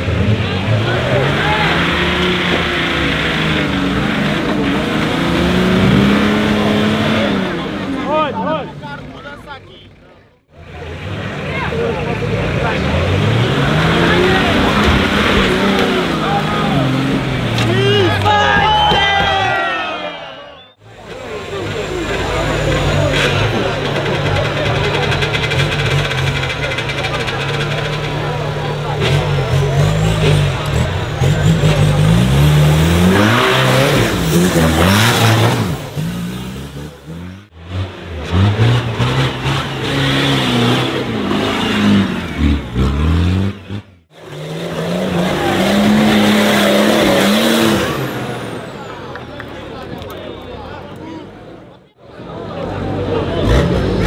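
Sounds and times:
off-road engines revving: 0:00.0 - 0:54.0
spectators' voices: 0:00.0 - 0:54.0.

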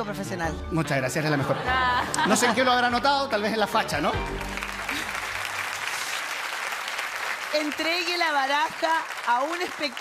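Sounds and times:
audience applauding: 0:03.9 - 0:10.0.

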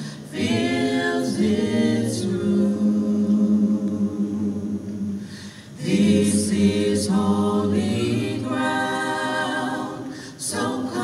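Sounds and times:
choir breath: 0:00.0 - 0:11.0
choir singing unaccompanied: 0:00.2 - 0:05.2, 0:05.8 - 0:11.0.

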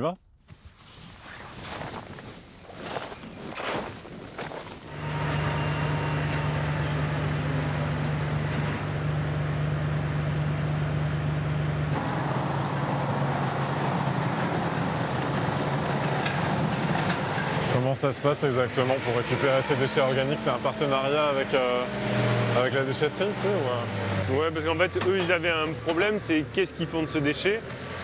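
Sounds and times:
heavy machinery engine hum: 0:04.9 - 0:28.0.

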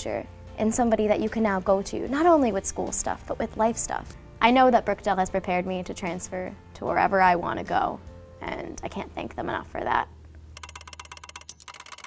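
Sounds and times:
fast even ticking: 0:10.6 - 0:12.0.

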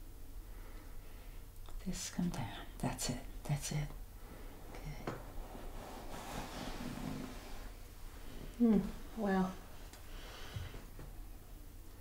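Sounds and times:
faint low hum: 0:00.0 - 0:12.0
woman breathing deeply: 0:10.1 - 0:10.9.

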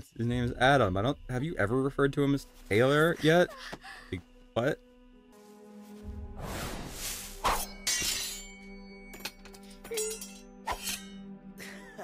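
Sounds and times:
background music: 0:00.0 - 0:12.0
metallic sword clashes ringing: 0:07.6 - 0:11.2.

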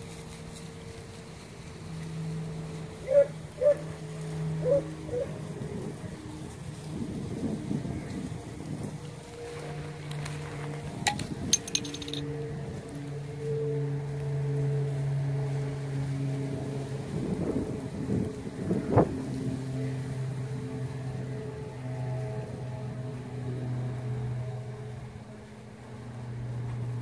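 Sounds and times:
brush and leaf litter rustling: 0:00.0 - 0:11.0.

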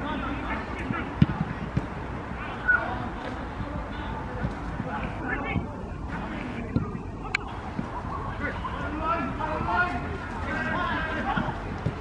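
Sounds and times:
football kicked thump: 0:01.2 - 0:01.9.

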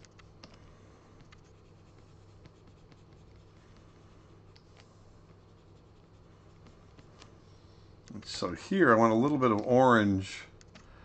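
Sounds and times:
stylus tapping and scratching: 0:00.0 - 0:07.4
low steady hum: 0:00.0 - 0:11.0.

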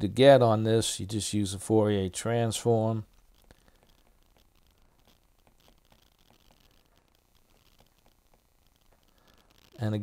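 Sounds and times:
stylus tapping on tablet screen: 0:03.3 - 0:09.7.

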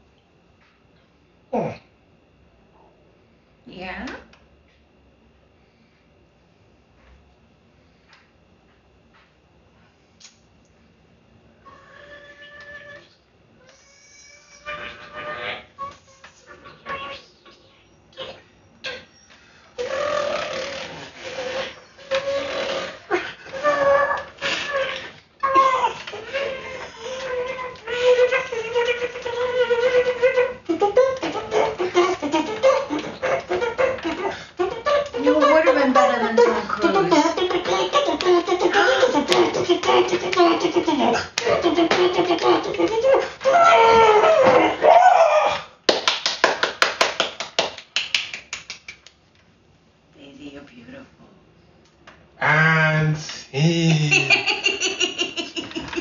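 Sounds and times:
person making rough wordless sound: 0:01.6 - 0:01.9, 0:27.6 - 0:43.8, 0:52.4 - 0:54.6
vocal sound: 0:19.8 - 0:43.6, 0:52.4 - 0:54.6
quick hand claps: 0:45.9 - 0:49.2.

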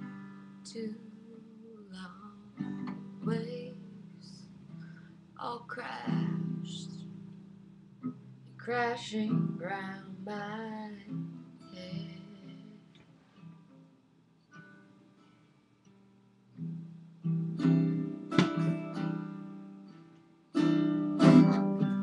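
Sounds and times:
guitar strumming: 0:00.0 - 0:13.9, 0:14.5 - 0:22.0.

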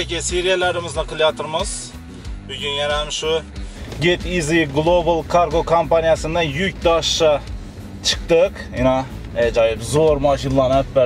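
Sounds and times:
man talking: 0:00.0 - 0:11.0
music: 0:00.0 - 0:11.0
low car hum: 0:01.8 - 0:11.0.

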